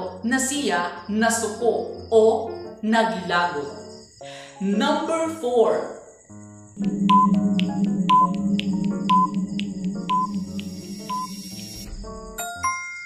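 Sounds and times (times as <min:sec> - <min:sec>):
synthesizer drone: 0:06.8 - 0:11.9
ticking: 0:06.9 - 0:11.8
short high beeps: 0:07.0 - 0:09.4, 0:10.0 - 0:11.8.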